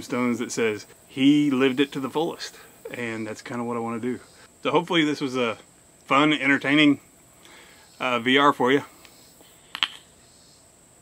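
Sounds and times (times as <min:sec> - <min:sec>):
faint high-pitched hum: 0:00.0 - 0:11.0.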